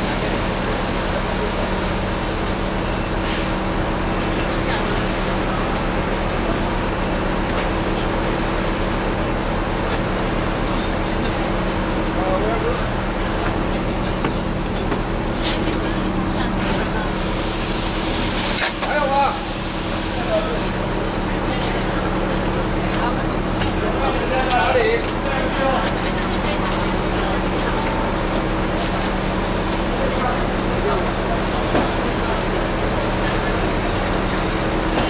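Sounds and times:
diesel engine idling: 0.0s - 24.2s
compressed air hiss: 17.1s - 20.8s.

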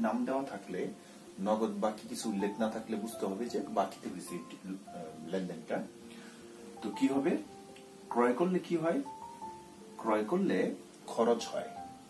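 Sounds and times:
man speaking: 0.0s - 5.9s
faint music of held tones: 0.0s - 12.0s.

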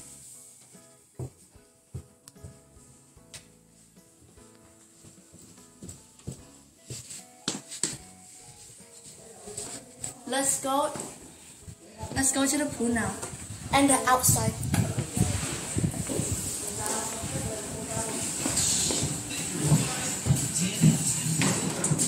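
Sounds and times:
soft background music: 0.0s - 22.0s
footsteps on carpeted stairs: 0.6s - 10.1s, 10.9s - 13.7s, 14.6s - 22.0s.

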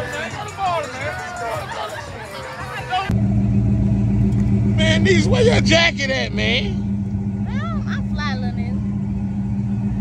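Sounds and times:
vehicle engine idling: 2.2s - 10.0s.

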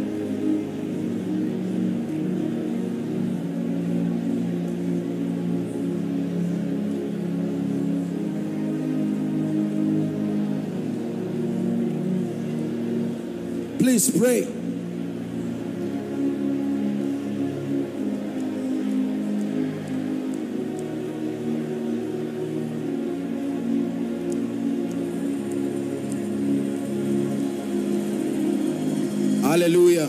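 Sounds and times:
ambient keyboard pad music: 0.0s - 30.0s.

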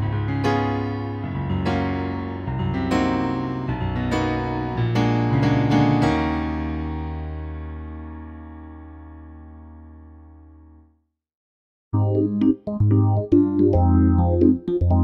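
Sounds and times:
piano chords: 0.0s - 10.9s, 12.0s - 15.0s.

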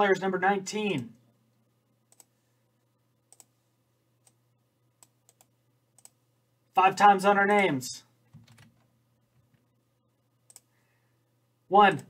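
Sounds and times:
computer mouse clicks: 2.1s - 2.3s, 3.3s - 3.6s, 5.0s - 6.2s, 10.5s - 10.7s.

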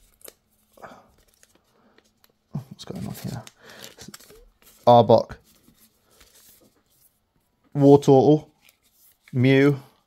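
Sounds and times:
cards rustling and clicking: 0.0s - 7.1s.

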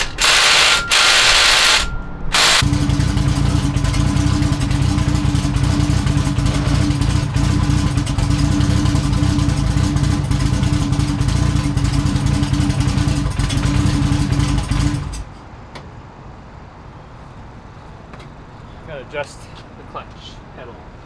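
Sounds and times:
car engine idling: 2.3s - 15.2s.

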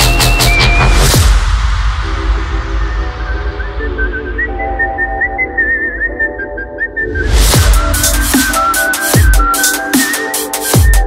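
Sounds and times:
whistled melody: 0.0s - 1.2s, 2.7s - 11.0s
deep bass: 0.0s - 5.6s, 7.0s - 9.6s.

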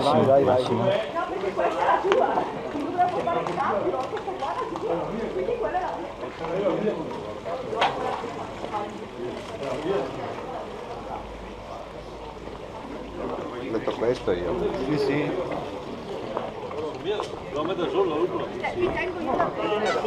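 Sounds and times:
people chattering: 0.0s - 20.0s.

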